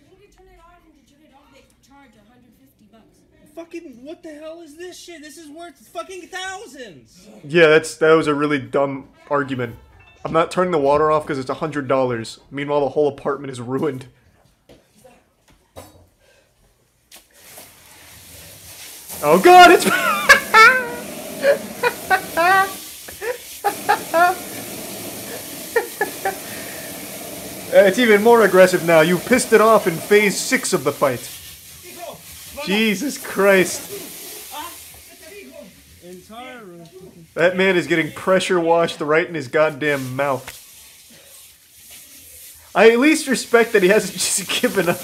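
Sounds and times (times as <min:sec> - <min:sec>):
hot water spraying from pipe: 0:17.2 - 0:45.0.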